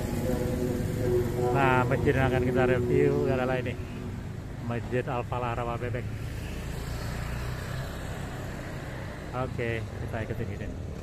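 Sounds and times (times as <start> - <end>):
motorbike passing close: 0.0 - 11.0
traffic engine rumble: 0.0 - 11.0.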